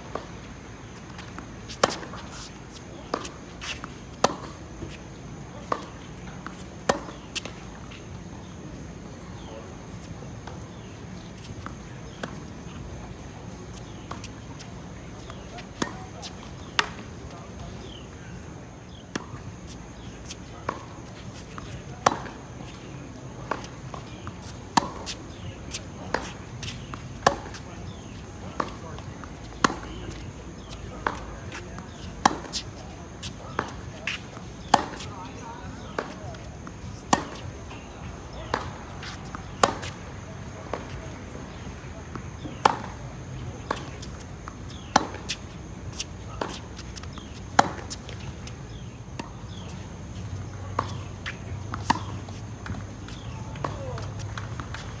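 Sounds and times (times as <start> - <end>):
tennis ball bouncing: 0.1 - 17.2, 19.0 - 35.1, 35.7 - 55.0
racquet hitting tennis ball: 1.1 - 4.6, 23.4 - 35.1, 35.8 - 40.0, 42.4 - 43.0, 43.6 - 50.2, 50.8 - 55.0.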